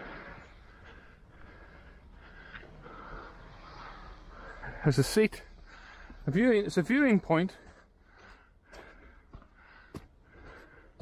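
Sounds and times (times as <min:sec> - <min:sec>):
faint breathing: 0:00.0 - 0:11.0
footsteps on sandy path: 0:06.0 - 0:11.0.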